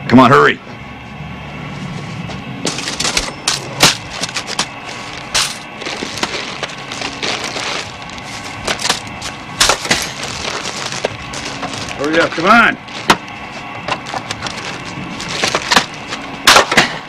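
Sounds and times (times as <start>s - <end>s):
paper bag crinkling: 4.0s - 16.2s.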